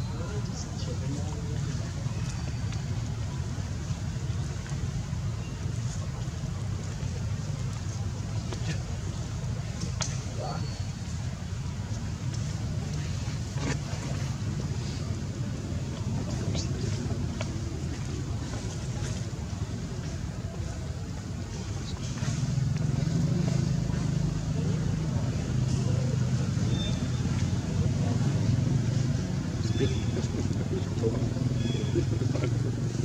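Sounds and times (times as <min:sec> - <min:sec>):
low motor hum: 0:00.0 - 0:33.0.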